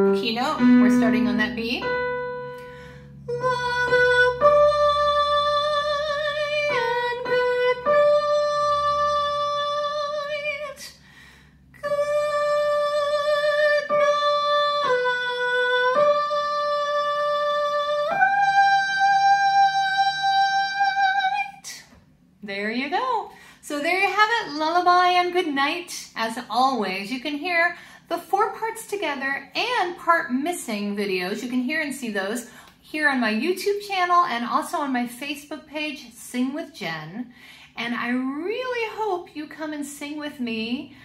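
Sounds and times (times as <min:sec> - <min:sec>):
woman singing: 0:00.0 - 0:02.0, 0:03.2 - 0:11.0, 0:11.8 - 0:21.9.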